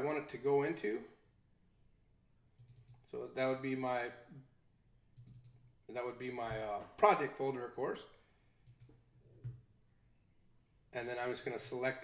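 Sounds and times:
computer mouse clicks: 2.6s - 3.1s, 5.2s - 5.6s, 8.6s - 9.6s.

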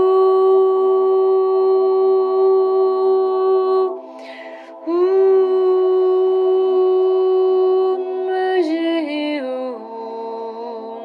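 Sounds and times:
faint low drone: 0.0s - 11.0s
woman singing long note: 0.0s - 11.0s.

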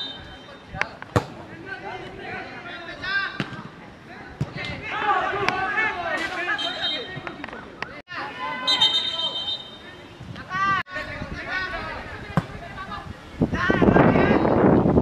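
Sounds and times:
football kicked thud: 1.1s - 1.4s
players and spectators shouting: 4.1s - 7.4s, 8.1s - 12.8s.

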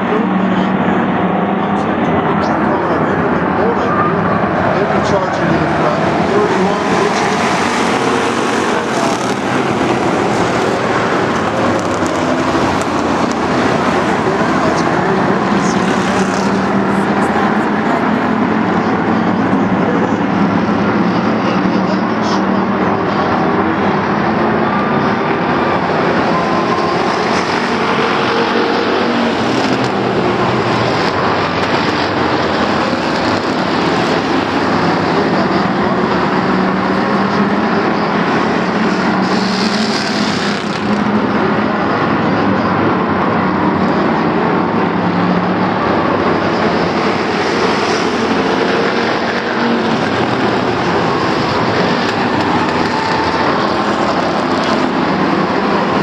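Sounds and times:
racing car engines: 0.0s - 56.0s.

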